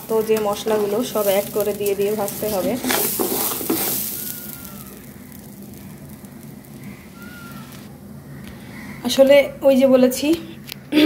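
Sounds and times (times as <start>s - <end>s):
wooden spoon stirring rice: 0.0s - 7.9s
rice sizzling in a pot: 0.0s - 8.3s.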